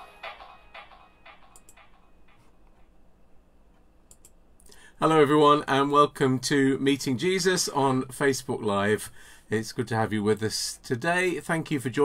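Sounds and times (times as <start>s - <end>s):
faint clicks: 3.7s - 4.8s.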